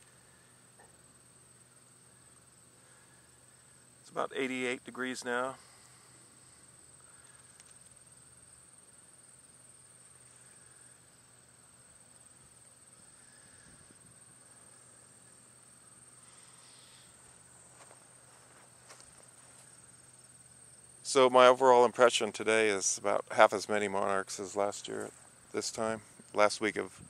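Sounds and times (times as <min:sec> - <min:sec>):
high-pitched insect chorus: 0:00.0 - 0:27.0
faint ticks: 0:07.0 - 0:08.0.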